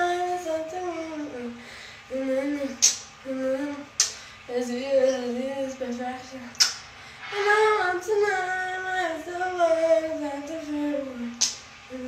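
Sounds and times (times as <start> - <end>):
woman singing wordless melody: 0.0 - 12.0.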